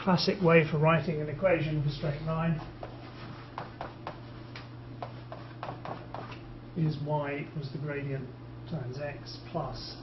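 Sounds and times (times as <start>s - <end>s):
chalk tapping on a blackboard: 2.7s - 6.4s.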